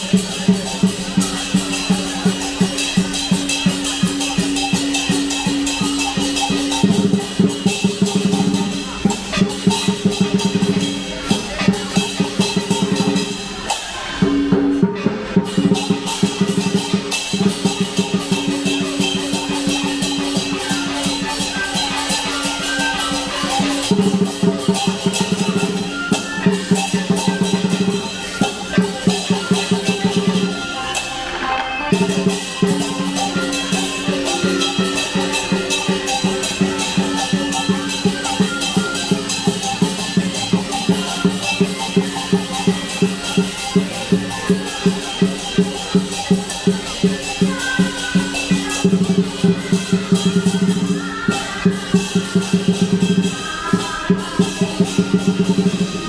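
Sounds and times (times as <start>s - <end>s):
big drum beaten fast: 0.0s - 31.0s, 31.9s - 56.0s
gong: 0.0s - 31.2s, 31.9s - 51.4s
cymbals clashing: 0.0s - 56.0s.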